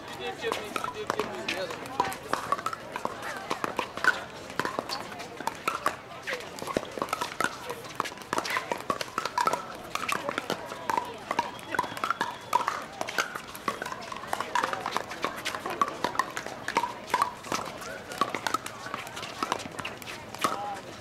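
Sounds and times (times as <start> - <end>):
voices chattering: 0.0 - 21.0.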